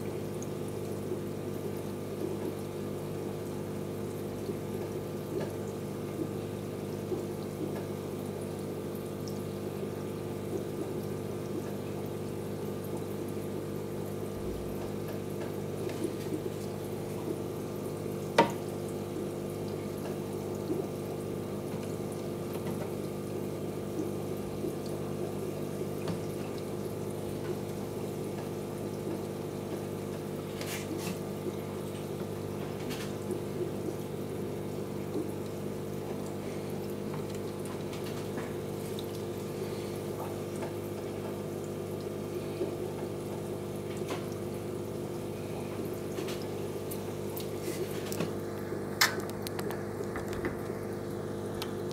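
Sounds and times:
aquarium filter pump humming: 0:00.0 - 0:51.9
moving water: 0:00.0 - 0:51.9.

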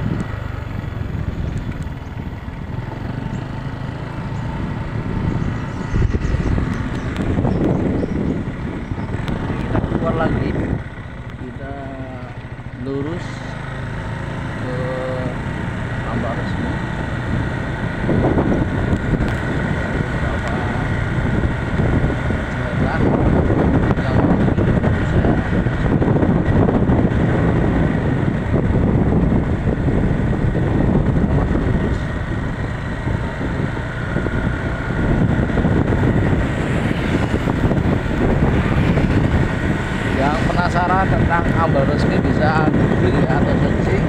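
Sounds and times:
motorcycle engine and tyre noise: 0:00.0 - 0:44.0
wind rushing over microphone: 0:00.0 - 0:44.0.

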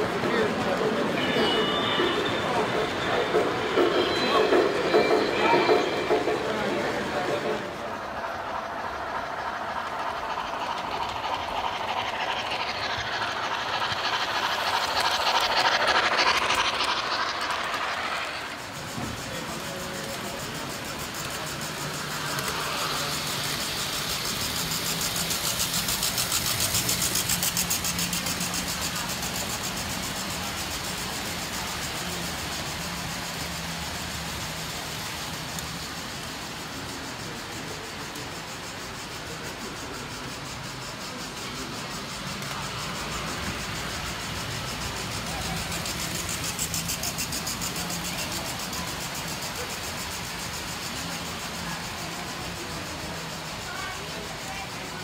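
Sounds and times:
model train motor hum: 0:00.0 - 0:55.0
wheels clicking on rails: 0:00.0 - 0:55.0
model train motor rumble: 0:05.6 - 0:55.0.

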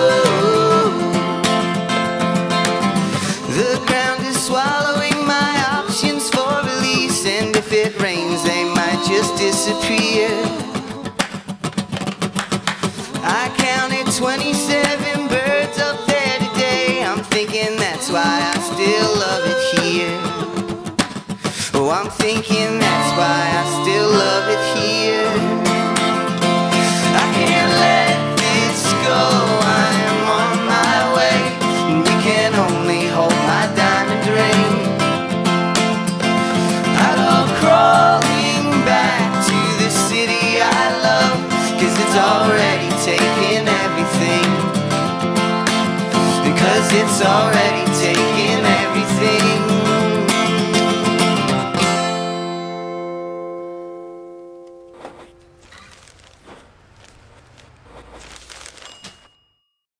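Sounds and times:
voices singing in harmony: 0:00.0 - 0:01.6, 0:08.1 - 0:11.0, 0:13.1 - 0:17.2, 0:17.8 - 0:20.8, 0:22.8 - 0:25.8, 0:26.8 - 0:35.0, 0:36.6 - 0:44.7, 0:46.2 - 0:50.4
acoustic guitar strummed: 0:00.0 - 0:55.6.

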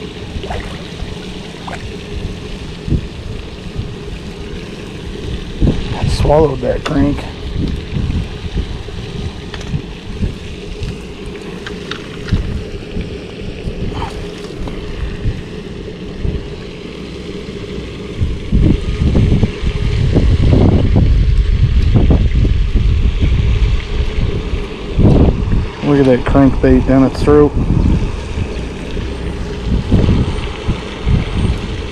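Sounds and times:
wind rumbling on microphone: 0:00.0 - 0:31.9.

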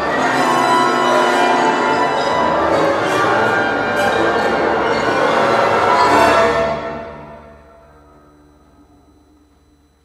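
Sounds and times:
symphony orchestra playing: 0:00.0 - 0:09.1.

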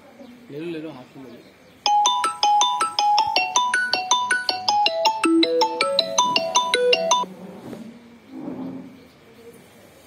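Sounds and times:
phone ringtone melody: 0:01.9 - 0:07.3.

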